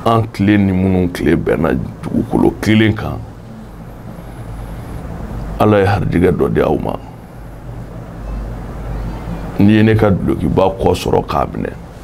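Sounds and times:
man's voice: 0.0 - 3.3, 5.6 - 7.1, 9.6 - 11.8
faint high whine: 0.0 - 12.0
low background rumble: 0.0 - 12.0.

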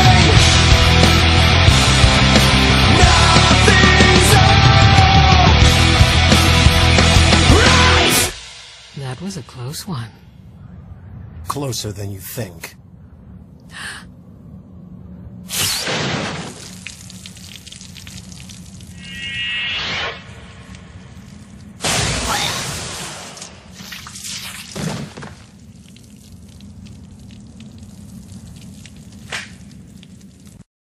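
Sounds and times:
low steady drone: 12.7 - 15.5
loud impact: 21.8 - 23.7.

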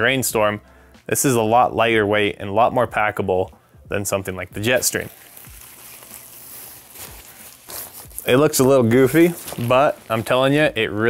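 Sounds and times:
thin rain poncho fabric crinkling: 4.6 - 11.0.

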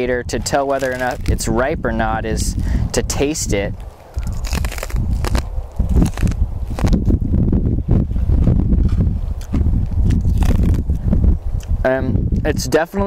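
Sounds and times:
low rumble: 0.0 - 12.6
chewing crunchy corn kernels: 0.4 - 1.5, 3.8 - 7.1, 8.9 - 11.0.

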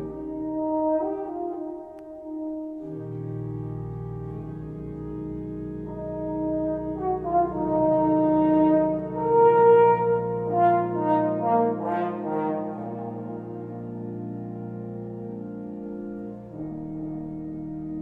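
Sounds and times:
brass melody: 0.0 - 18.0
pipe organ chords: 0.0 - 18.0.

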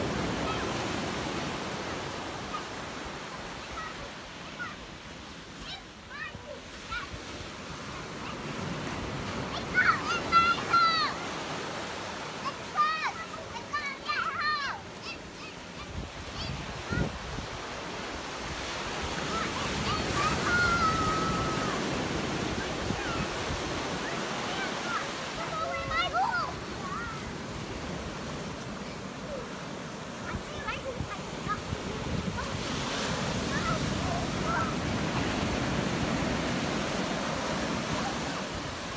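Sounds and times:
ocean surf breaking on beach: 0.0 - 38.9.

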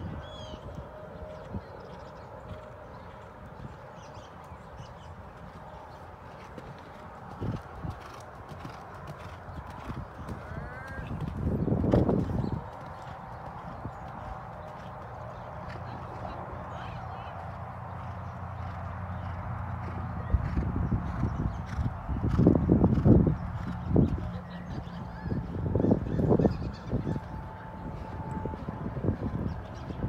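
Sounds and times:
horse hooves cantering on sand: 1.3 - 30.0
horse hoofbeats on sand: 5.3 - 16.2.

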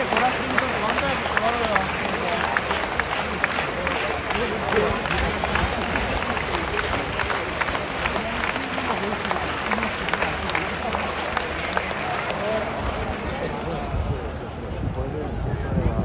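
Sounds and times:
crowd clapping: 0.0 - 14.6
hubbub of spectators' voices: 0.0 - 16.0.

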